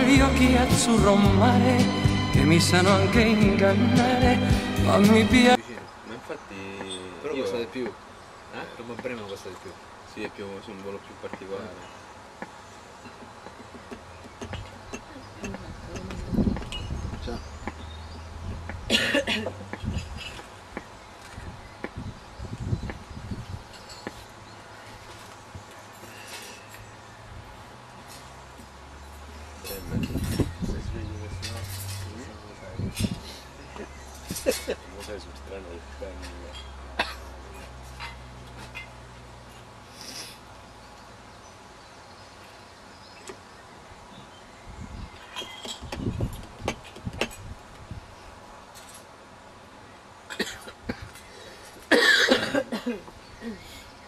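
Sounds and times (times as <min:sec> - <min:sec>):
indistinct voices talking: 0:00.0 - 0:12.0, 0:14.4 - 0:20.4, 0:29.5 - 0:38.8.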